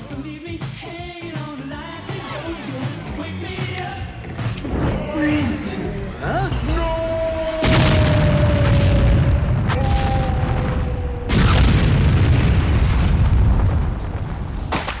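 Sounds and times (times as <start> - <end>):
explosion boom with rumble: 7.5 - 14.7.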